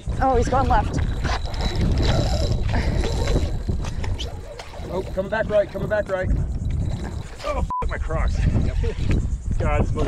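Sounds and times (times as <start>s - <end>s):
wind buffeting microphone: 0.0s - 10.0s
fishing reel whirring: 0.1s - 9.4s.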